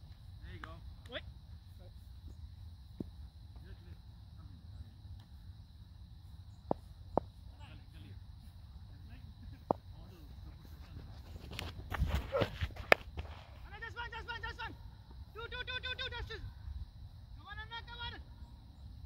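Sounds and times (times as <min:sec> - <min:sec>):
cricket bat hitting ball: 0:12.0 - 0:13.6.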